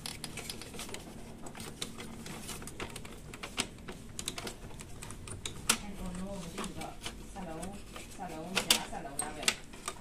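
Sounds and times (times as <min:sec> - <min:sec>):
plastic and metal parts clicking: 0:00.0 - 0:10.0.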